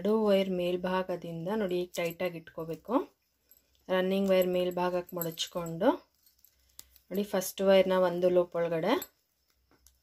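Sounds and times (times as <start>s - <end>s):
woman talking: 0.0s - 3.2s, 3.9s - 6.1s, 7.1s - 9.1s.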